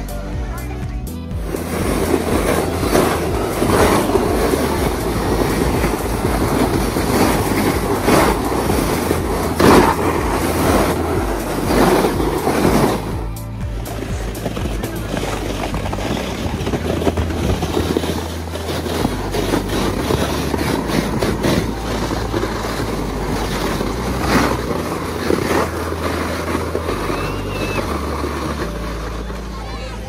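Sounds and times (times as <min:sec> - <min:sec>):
sleds scraping on snow: 0:00.0 - 0:30.0
wind buffeting microphone: 0:01.3 - 0:29.0.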